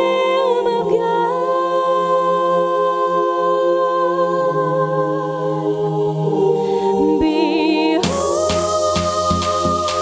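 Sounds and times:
high solo voice singing: 7.0 - 10.0
sustained accompanying chords: 8.0 - 10.0.

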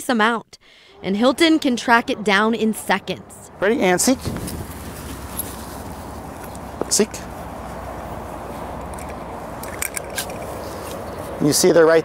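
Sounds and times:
outdoor background noise: 0.0 - 12.0
dog rustling through grass: 4.1 - 9.6, 10.4 - 11.6.

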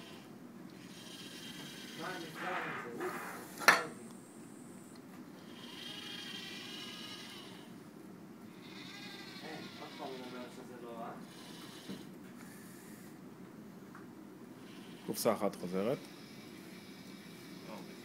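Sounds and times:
faint steady hum: 0.0 - 18.0
robot arm motors whining: 5.5 - 7.7, 8.6 - 10.6.

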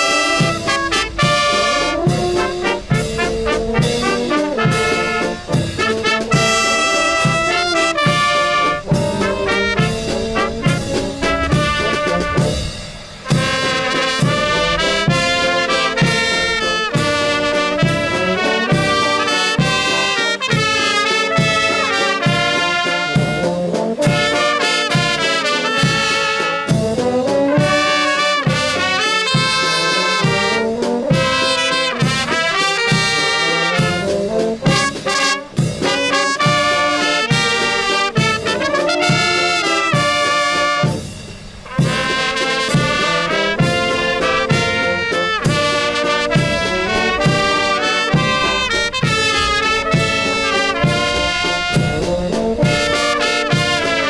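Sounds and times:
brass band playing: 0.0 - 54.0
bass drum beat: 0.4 - 19.0, 42.0 - 54.0.

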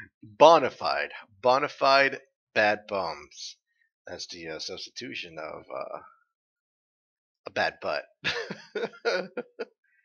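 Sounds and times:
man laughing: 7.5 - 9.6.

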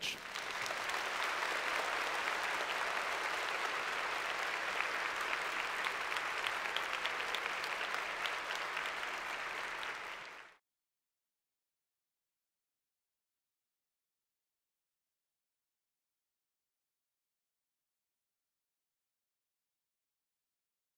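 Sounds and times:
audience applauding: 0.0 - 10.6.

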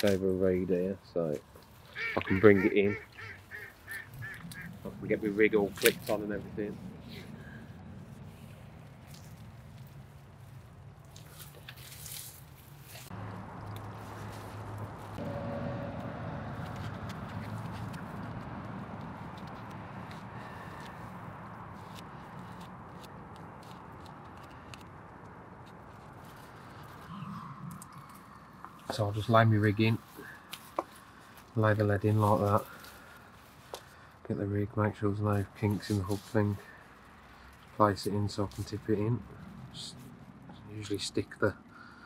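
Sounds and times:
dry reeds rustling: 0.0 - 41.1.

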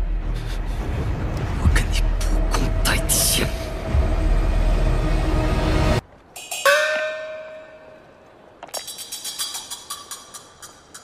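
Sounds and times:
deep steady rumble: 0.0 - 6.0
trailer music: 0.0 - 6.5.

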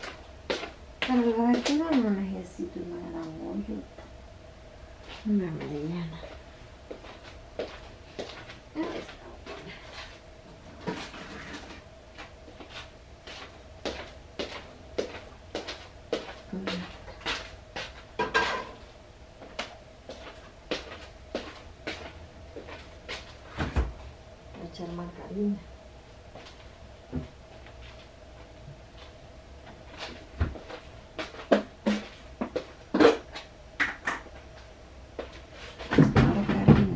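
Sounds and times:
steady faint hum: 0.0 - 36.9.

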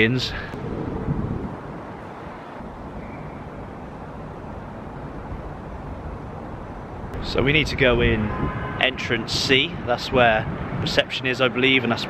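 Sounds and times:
distant traffic rumble: 0.0 - 12.0.

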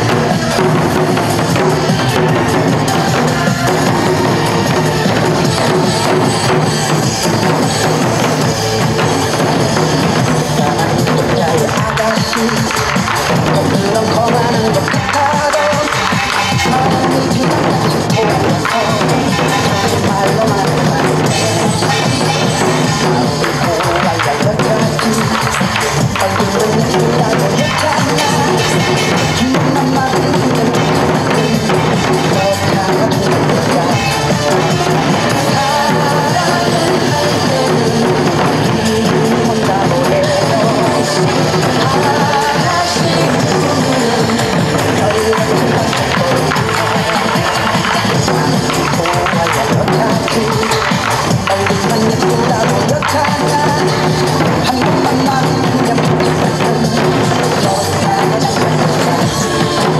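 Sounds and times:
barrel drums rapid rhythm: 0.0 - 59.9
trot song backing track: 0.0 - 59.9.

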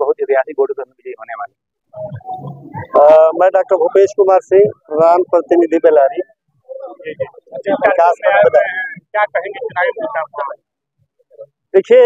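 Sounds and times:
men speaking: 0.0 - 10.6.

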